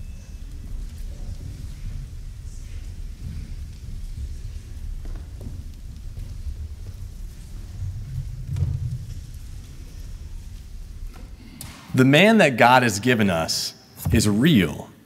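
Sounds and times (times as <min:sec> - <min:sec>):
low church room rumble: 0:00.0 - 0:15.0.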